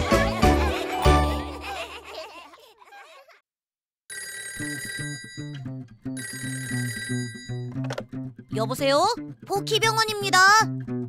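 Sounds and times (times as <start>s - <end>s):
music track: 0.0s - 2.0s
children's song backing: 0.0s - 2.1s
cartoon telephone ringing: 4.1s - 5.6s, 6.2s - 7.7s.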